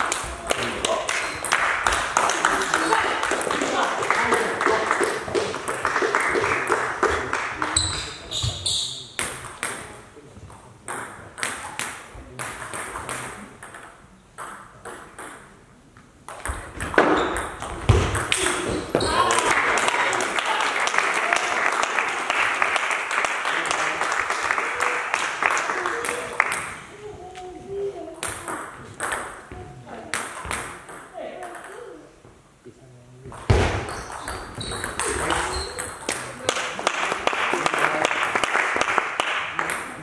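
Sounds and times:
people clapping: 0:00.0 - 0:08.2, 0:18.3 - 0:26.9, 0:34.9 - 0:40.0.

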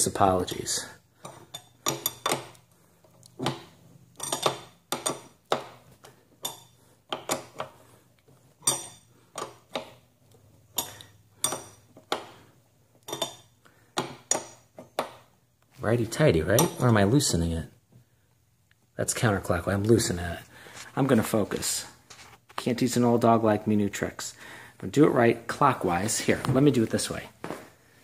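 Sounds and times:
metal wrench clinking on pedal: 0:04.2 - 0:05.6, 0:08.6 - 0:09.6.

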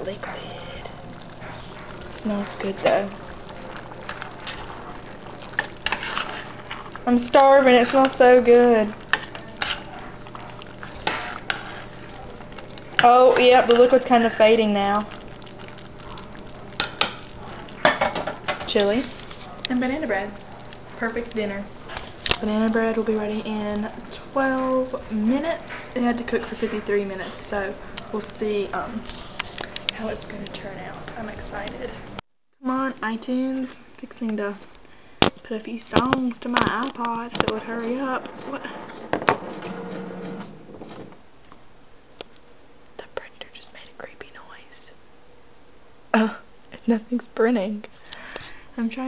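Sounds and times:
low bubbling hiss: 0:00.0 - 0:32.2
spoon stirring chili: 0:00.1 - 0:32.0, 0:36.3 - 0:40.6
printer mechanism whirring: 0:39.0 - 0:41.2.

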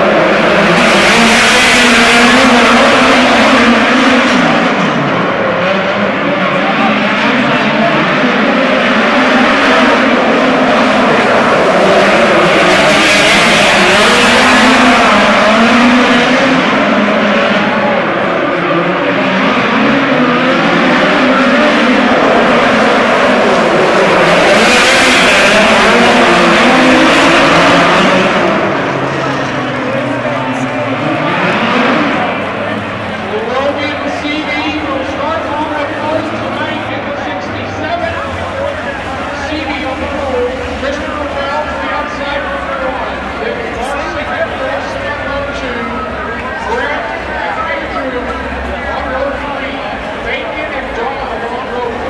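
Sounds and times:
race car engines running hard: 0:00.0 - 0:52.0.

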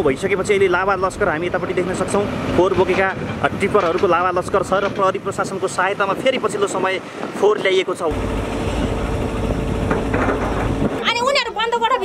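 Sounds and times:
diesel earthmoving machinery rumbling: 0:00.0 - 0:06.8, 0:08.1 - 0:12.0.

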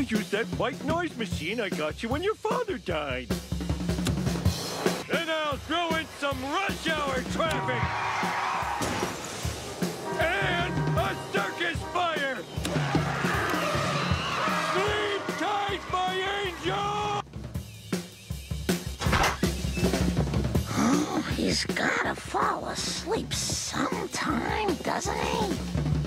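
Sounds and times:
drum kit playing loudly: 0:00.0 - 0:22.4, 0:23.0 - 0:26.0
recorded traffic noise: 0:03.9 - 0:17.2.

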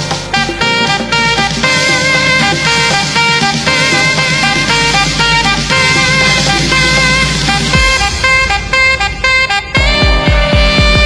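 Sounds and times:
kick drum: 0:00.0 - 0:08.9, 0:09.7 - 0:11.0
bass: 0:00.0 - 0:11.0
saxophone playing: 0:00.1 - 0:11.0.

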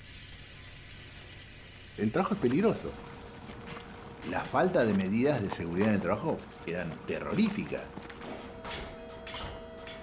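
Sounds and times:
low hum with hiss: 0:00.0 - 0:10.0.

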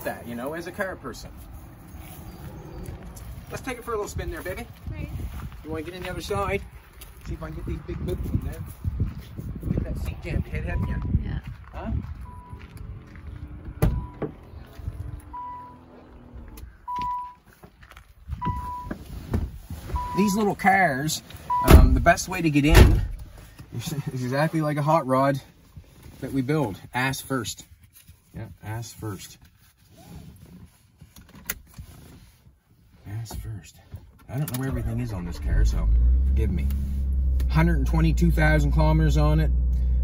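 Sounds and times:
car warning chime beeping: 0:12.2 - 0:12.7, 0:13.8 - 0:14.3, 0:15.2 - 0:15.9, 0:16.8 - 0:17.4, 0:18.4 - 0:19.0, 0:19.9 - 0:20.6, 0:21.4 - 0:22.0
rustling of belt and clothing: 0:25.5 - 0:33.2.

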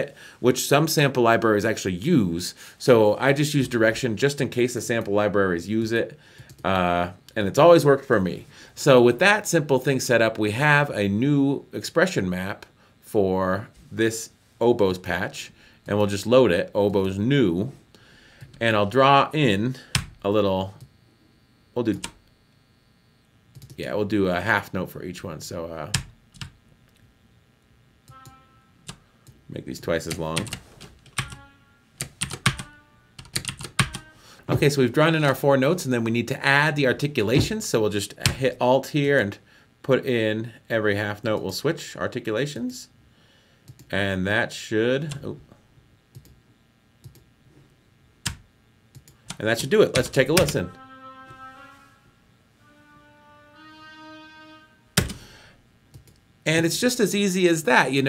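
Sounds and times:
short oboe note: 0:28.1 - 0:28.7, 0:31.2 - 0:31.9, 0:33.9 - 0:34.6, 0:50.6 - 0:55.0.

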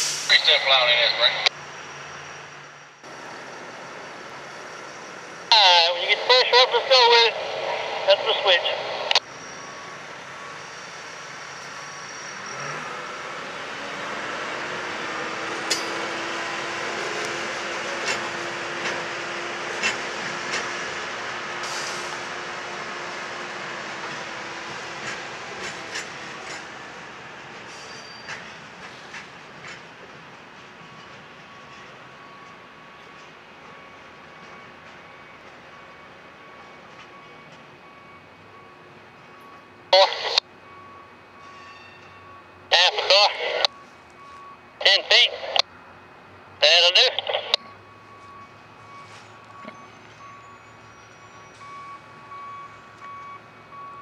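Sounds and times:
truck engine: 0:00.0 - 0:54.0.

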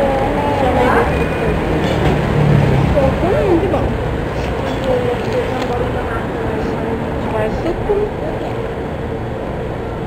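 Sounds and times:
heavy vehicle engine rumble: 0:00.0 - 0:10.0.

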